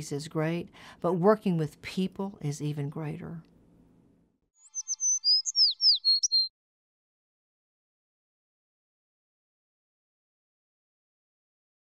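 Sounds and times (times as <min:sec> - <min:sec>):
bird-like chirps and tweets: 0:04.6 - 0:06.5.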